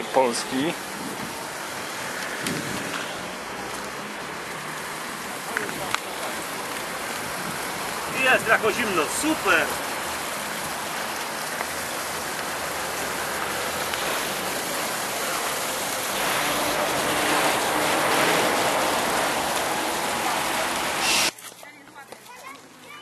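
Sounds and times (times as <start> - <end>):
water rushing through stone channel: 0.0 - 21.3.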